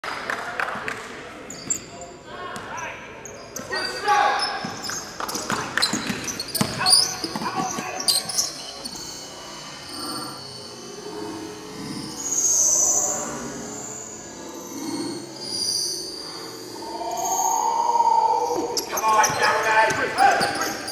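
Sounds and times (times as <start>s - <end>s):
players' voices echoing: 0.1s - 8.8s, 16.8s - 20.9s
shoe squeaks: 1.5s - 10.5s, 18.5s - 20.9s.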